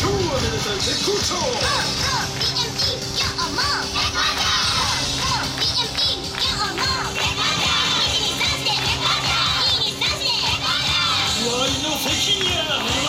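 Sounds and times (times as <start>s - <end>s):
dance music: 0.0s - 13.0s.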